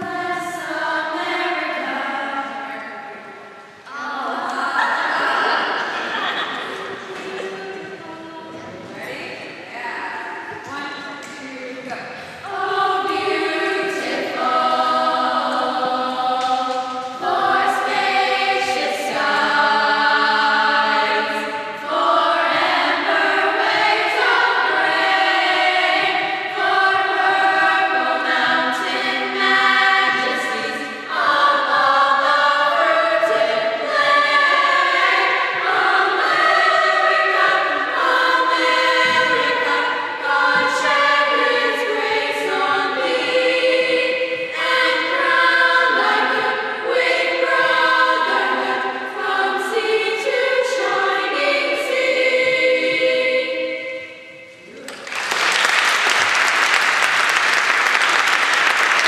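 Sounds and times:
children's choir singing: 0.0 - 59.0.

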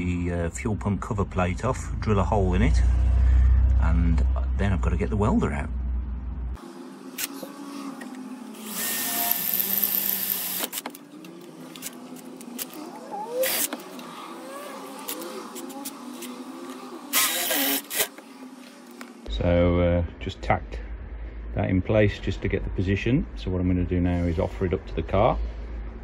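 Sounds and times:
drill bit squealing: 8.6 - 10.7, 13.1 - 13.8, 17.1 - 18.1
cordless drill boring through metal: 8.6 - 10.8, 13.4 - 13.8, 17.1 - 18.1.

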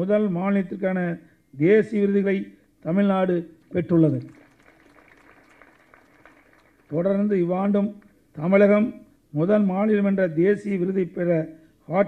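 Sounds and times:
man speaking into a microphone: 0.0 - 4.4, 6.9 - 12.0
room noise hiss: 0.0 - 12.0.

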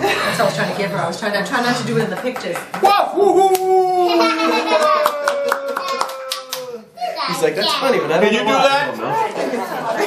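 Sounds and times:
person cheering woo: 2.8 - 6.9
hand clapping: 3.5 - 3.7, 4.8 - 6.8.

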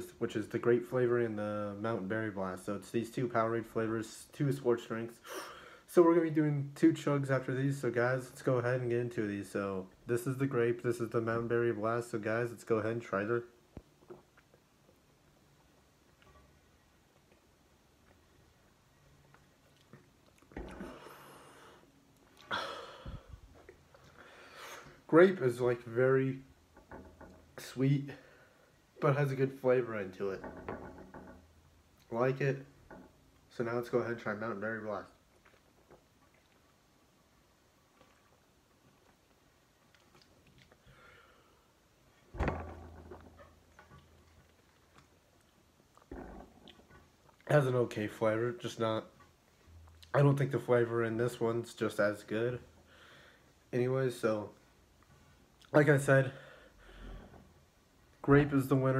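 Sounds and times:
low thump: 42.3 - 43.4.

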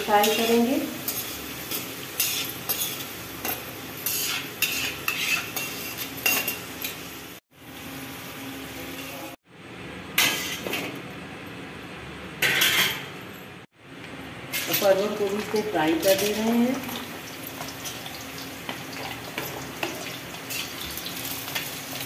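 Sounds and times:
potatoes sizzling in hot oil: 0.0 - 8.4, 14.5 - 22.0
wire strainer scraping metal pan: 4.0 - 6.6.

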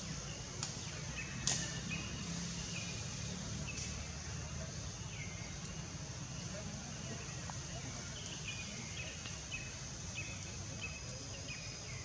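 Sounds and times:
high-pitched outdoor hiss: 0.0 - 12.0
sharp snap: 1.4 - 1.8.

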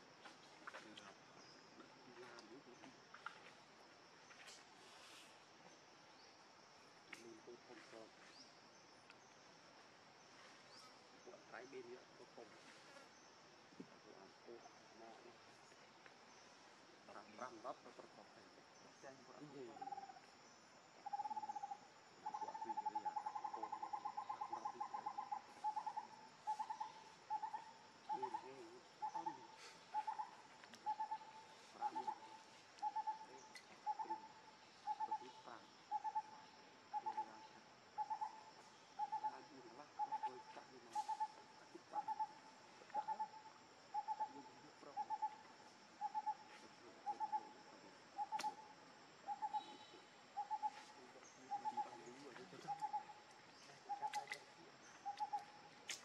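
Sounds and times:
bird hooting: 21.0 - 47.6, 48.2 - 53.2.

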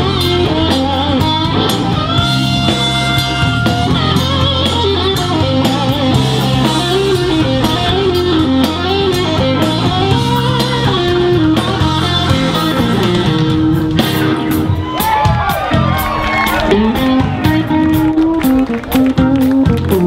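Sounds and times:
blues band playing: 0.0 - 20.0
electric guitar solo: 0.0 - 20.0.

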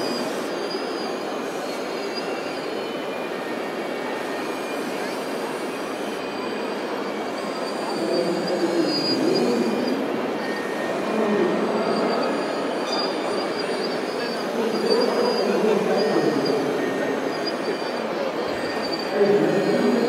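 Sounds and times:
electric whine of hydraulic pumps: 0.0 - 20.0.

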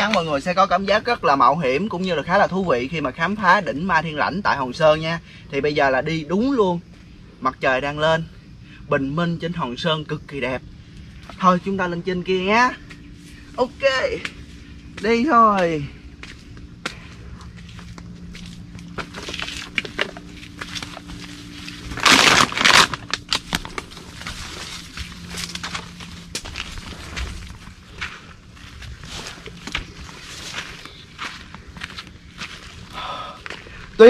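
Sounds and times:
faint low hum: 0.0 - 34.0
footsteps scrambling on rocks: 14.3 - 32.9.

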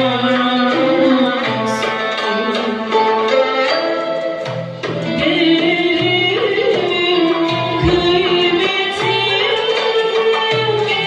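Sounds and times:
oud: 0.0 - 11.0
violin: 0.0 - 11.0.

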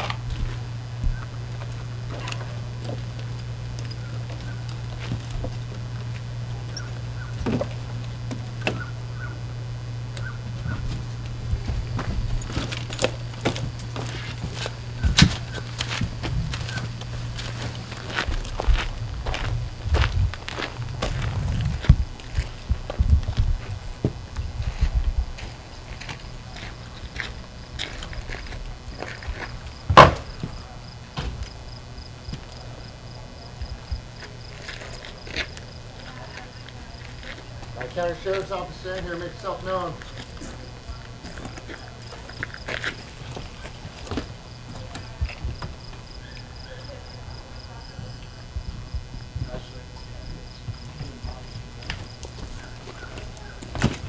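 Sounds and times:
footsteps: 0.0 - 9.4, 10.1 - 32.7, 33.5 - 54.0
low hum: 0.0 - 54.0
loud thump: 29.9 - 30.5.

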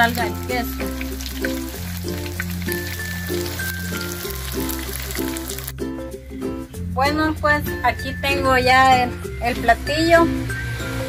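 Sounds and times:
food sizzling in hot oil: 0.0 - 5.8
background music with bass line: 0.0 - 11.0.

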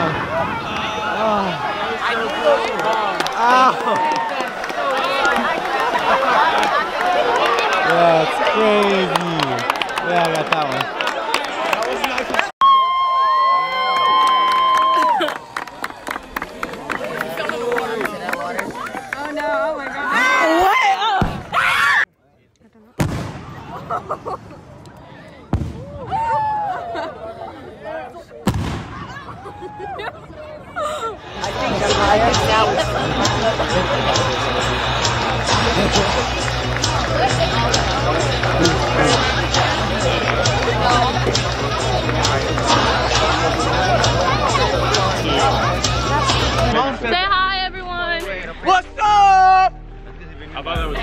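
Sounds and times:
spectators exclaiming: 0.0 - 22.1, 25.8 - 28.2, 28.9 - 46.8
crowd chatter: 0.0 - 51.0.

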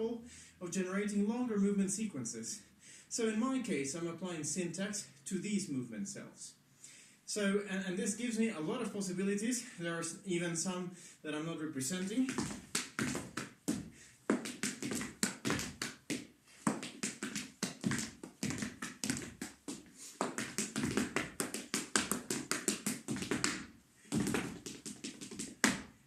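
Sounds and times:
shoes stamping on wooden floor: 12.2 - 26.0
hand claps and body slaps: 12.3 - 26.0.

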